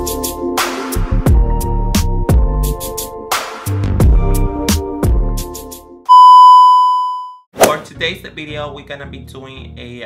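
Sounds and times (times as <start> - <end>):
high test card beep: 6.1 - 7.4.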